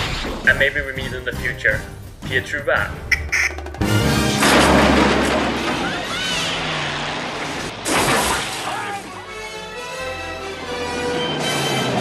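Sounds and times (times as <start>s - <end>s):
orchestral music: 0.5s - 5.6s, 8.9s - 12.0s.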